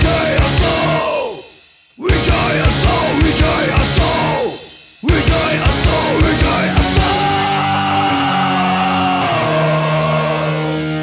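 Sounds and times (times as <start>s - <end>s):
electric guitar chords: 0.0s - 1.0s, 2.1s - 4.5s, 5.1s - 11.0s.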